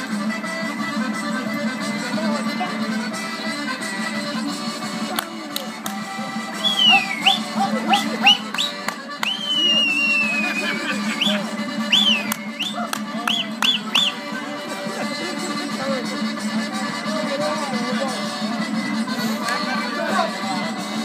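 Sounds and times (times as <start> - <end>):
music: 0.0 - 21.0
high sliding whistles: 6.6 - 7.5, 8.2 - 14.2.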